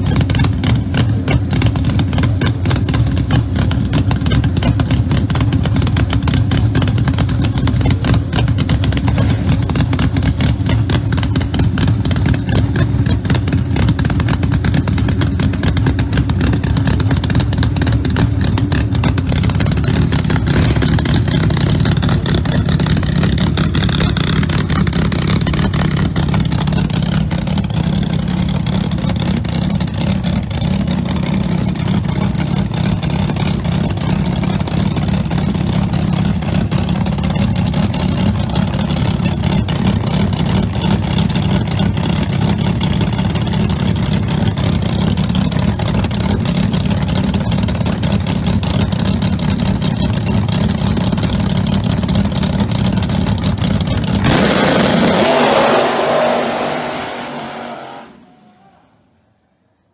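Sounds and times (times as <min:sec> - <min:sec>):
drag car engine idling loudly: 0:00.0 - 0:58.6.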